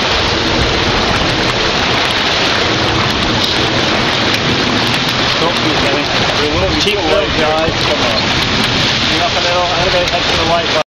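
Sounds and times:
wind rushing: 0.0s - 10.8s
water noise: 0.0s - 10.9s.

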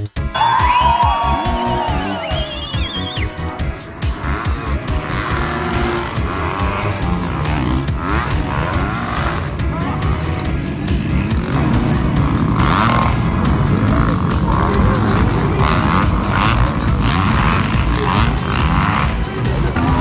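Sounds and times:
music playing: 0.0s - 20.0s
dirt bike engines revving: 0.2s - 20.0s.

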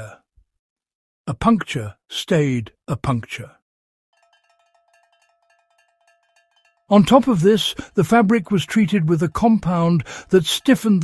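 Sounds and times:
narration: 1.3s - 3.6s, 6.9s - 11.0s
soft held bell-like tone: 4.2s - 6.9s.

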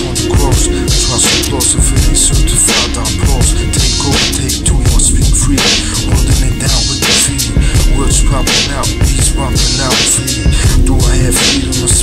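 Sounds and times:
hip hop beat with heavy bass: 0.0s - 12.0s
man rapping: 0.0s - 12.0s.

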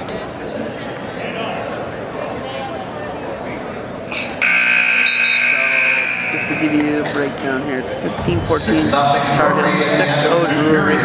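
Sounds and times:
crowd voices: 0.0s - 11.0s
scoreboard buzzer: 4.4s - 7.0s.

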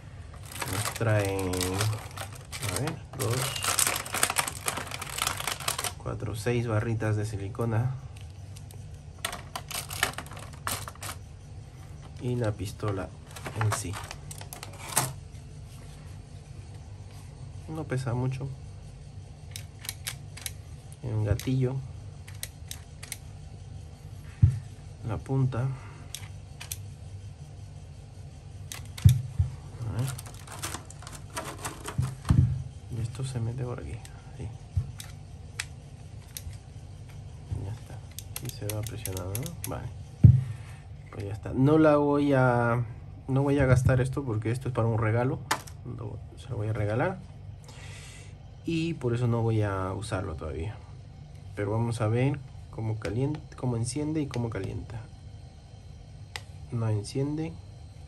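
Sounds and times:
plastic handling: 0.0s - 6.0s, 8.6s - 11.2s, 12.0s - 15.2s, 28.7s - 32.6s
low steady hum: 0.0s - 58.0s
plastic packaging crinkling: 0.4s - 6.0s, 9.2s - 11.2s, 13.2s - 15.1s, 29.9s - 32.4s.

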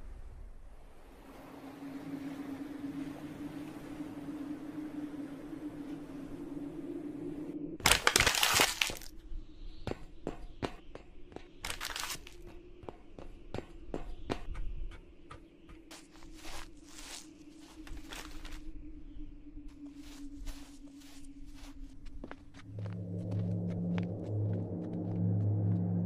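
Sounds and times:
steady low hum: 12.3s - 26.0s.

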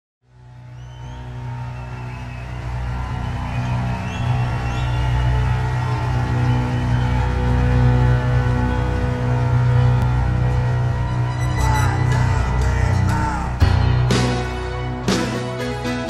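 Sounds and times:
sustained low drone: 0.3s - 15.0s.

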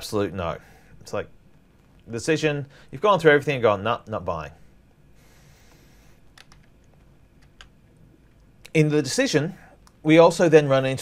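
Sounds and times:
low room hum: 0.0s - 11.0s
computer clicks: 6.3s - 8.5s.

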